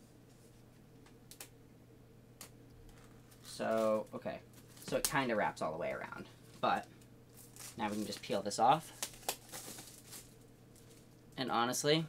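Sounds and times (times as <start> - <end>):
plastic film crackling: 2.9 - 5.3, 6.4 - 11.4.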